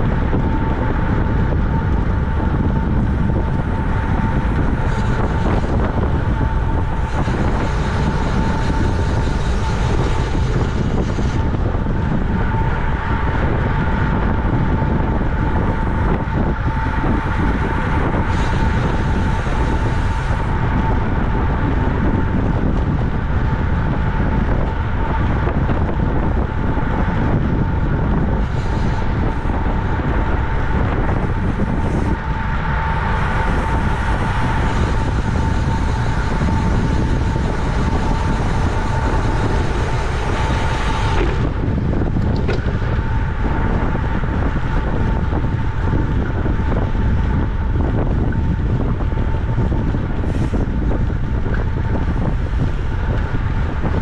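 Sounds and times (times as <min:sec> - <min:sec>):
thin steady whine: 0:00.0 - 0:54.0
wind roaring on microphone: 0:00.0 - 0:54.0.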